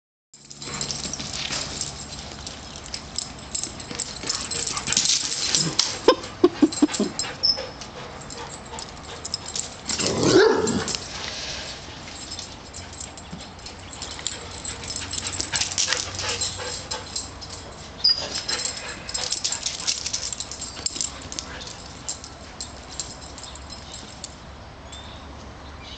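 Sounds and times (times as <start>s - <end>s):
dogs scuffling and clicking: 0.4s - 24.4s.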